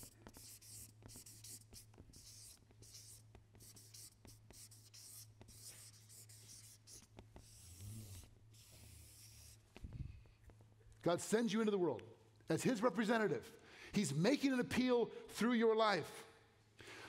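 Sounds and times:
marker pen scratching on paper: 0.0s - 10.6s.

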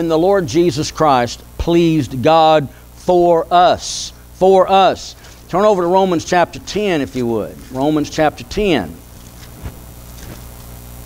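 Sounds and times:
electrical mains hum: 0.0s - 11.0s
pages being turned: 9.2s - 10.7s.

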